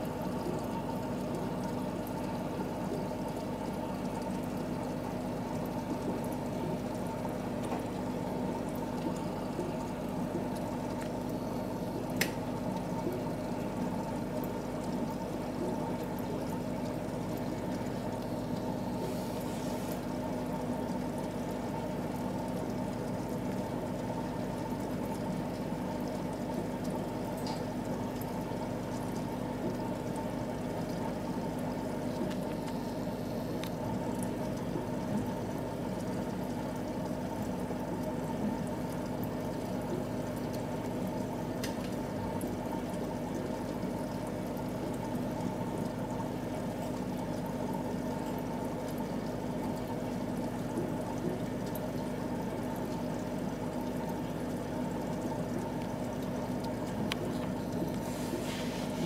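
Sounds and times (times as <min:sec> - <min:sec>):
constant low hum: 0:00.0 - 0:59.0
water pouring and splashing: 0:00.1 - 0:59.0.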